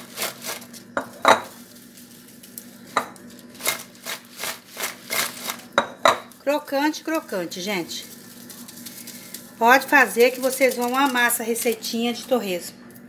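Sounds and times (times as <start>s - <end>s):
pork crackling clattering in glass bowl: 0.1s - 6.4s, 7.6s - 12.4s.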